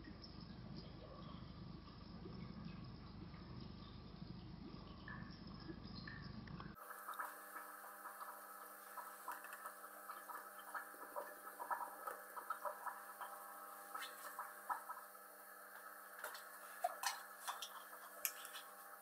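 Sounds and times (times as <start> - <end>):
aquarium filter humming: 0.0 - 19.0
water ticking and dripping: 0.0 - 19.0.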